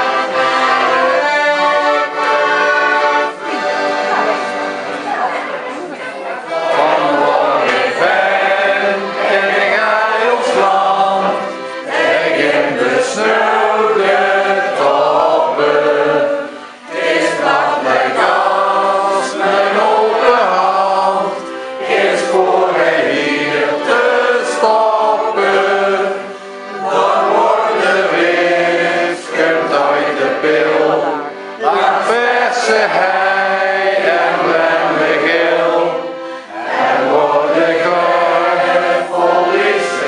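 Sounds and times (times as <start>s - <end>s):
group singing an anthem: 6.3s - 40.0s.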